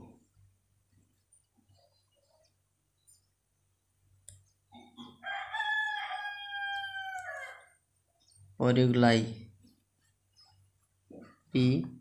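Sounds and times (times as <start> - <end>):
long crow-like bird call: 5.3 - 7.7.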